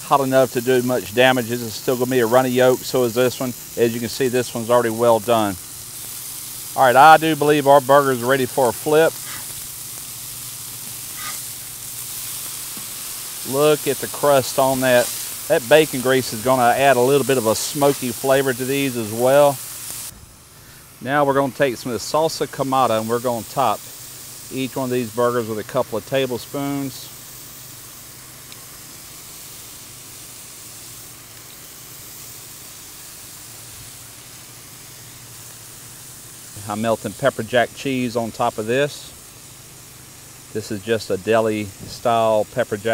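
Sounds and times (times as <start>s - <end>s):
burger patties sizzling on griddle: 0.0s - 42.9s.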